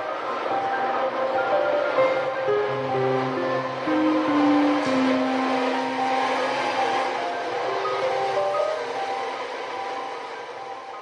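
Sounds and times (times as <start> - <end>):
relaxing piano music: 0.0 - 11.0.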